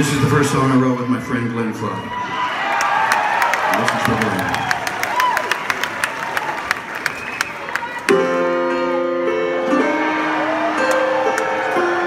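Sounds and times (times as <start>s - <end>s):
audience cheering and clapping: 2.1s - 8.6s, 9.5s - 12.0s
whistles from crowd: 7.0s - 7.8s.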